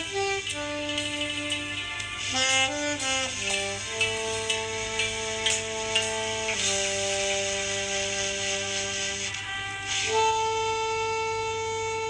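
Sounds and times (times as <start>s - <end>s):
saxophone holding long note: 2.2s - 12.0s.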